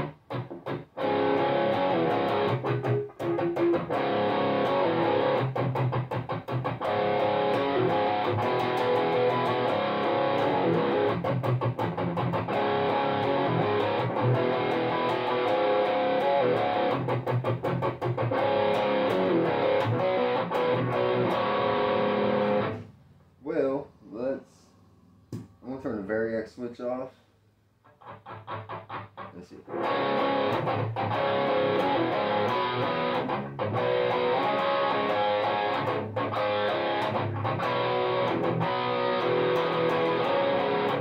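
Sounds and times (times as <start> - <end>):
distorted electric guitar riffing: 0.0 - 22.9, 27.9 - 41.0.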